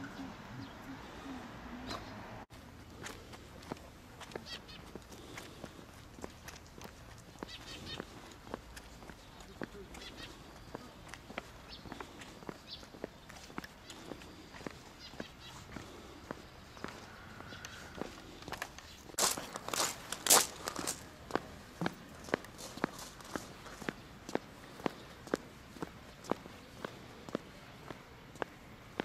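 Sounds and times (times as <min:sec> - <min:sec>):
footsteps on stone path: 0:00.0 - 0:29.0
crunching or scuffing: 0:18.5 - 0:24.0.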